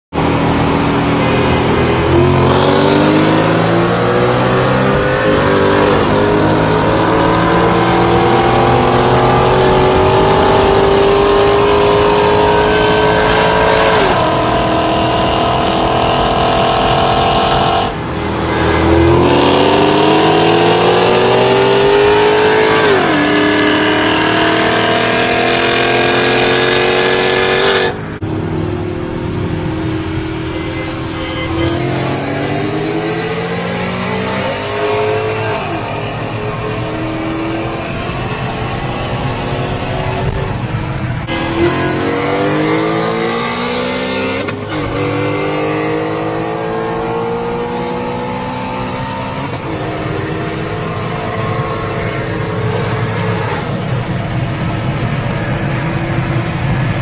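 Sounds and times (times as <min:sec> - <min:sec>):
car engines racing at full throttle: 0:00.1 - 0:57.0.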